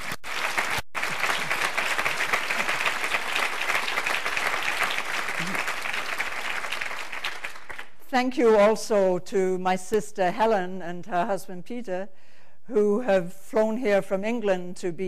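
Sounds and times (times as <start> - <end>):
audience applause: 0.0 - 8.0.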